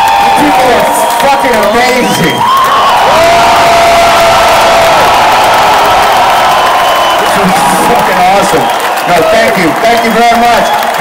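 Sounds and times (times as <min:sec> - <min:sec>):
crowd cheering and whooping: 0:00.0 - 0:11.0.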